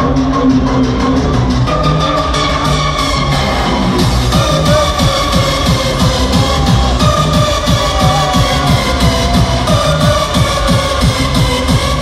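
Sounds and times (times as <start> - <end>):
hardcore electronic music: 0.0 - 12.0.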